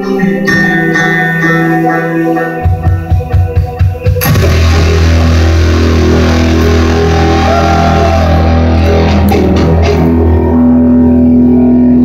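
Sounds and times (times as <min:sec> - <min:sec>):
rock band holding a sustained chord: 0:02.6 - 0:12.0.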